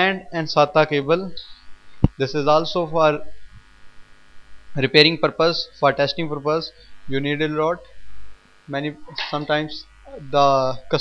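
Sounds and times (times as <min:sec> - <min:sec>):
man speaking: 0:00.0 - 0:01.5, 0:02.2 - 0:03.3, 0:04.8 - 0:07.9, 0:08.7 - 0:11.0
faint electrical hum: 0:00.0 - 0:11.0.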